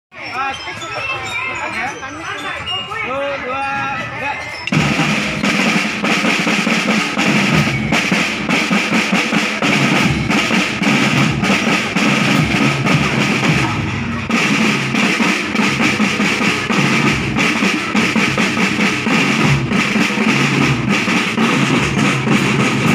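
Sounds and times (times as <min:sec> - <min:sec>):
marching snare drums playing: 0:04.7 - 0:22.9.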